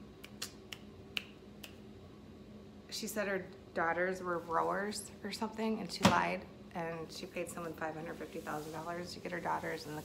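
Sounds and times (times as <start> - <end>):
finger snaps: 0.1 - 1.8.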